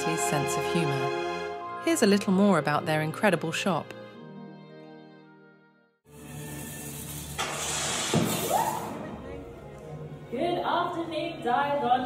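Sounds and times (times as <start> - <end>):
crowd murmur in a hall: 8.9 - 12.0.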